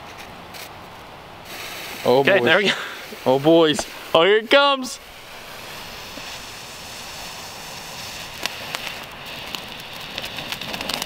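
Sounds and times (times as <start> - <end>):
firework fuse hissing: 0.2 - 11.0.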